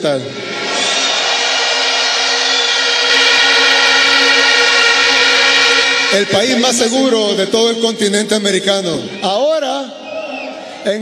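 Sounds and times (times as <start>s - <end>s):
large crowd cheering: 0.0s - 11.0s.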